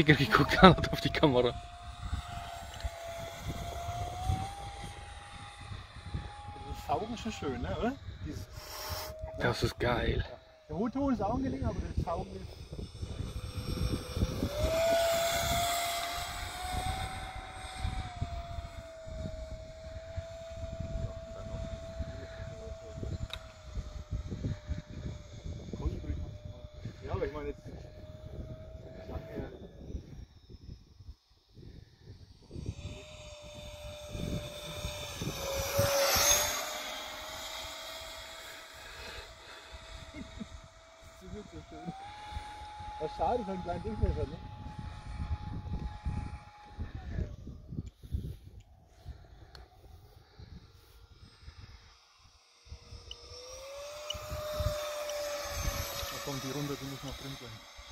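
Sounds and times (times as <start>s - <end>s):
electric ducted fan whining: 0.0s - 57.9s.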